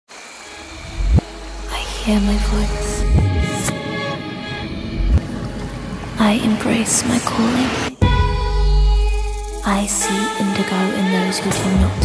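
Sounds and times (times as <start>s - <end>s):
soundtrack music of held tones: 0.4s - 12.0s
deep low boom: 0.7s - 6.6s.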